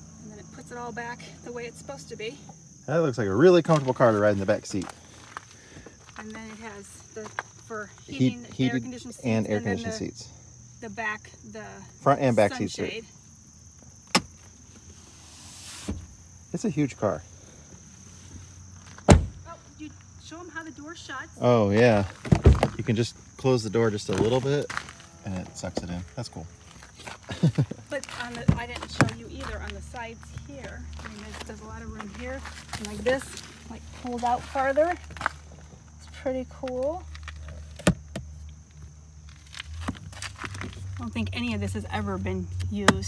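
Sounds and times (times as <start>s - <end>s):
insects droning: 0.0s - 43.0s
car door shutting: 15.6s - 16.2s, 18.9s - 19.5s, 22.2s - 22.9s.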